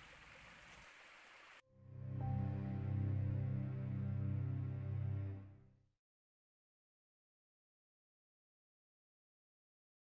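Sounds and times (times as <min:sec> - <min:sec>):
faint forest stream rushing: 0:00.0 - 0:01.6
music: 0:01.6 - 0:06.0.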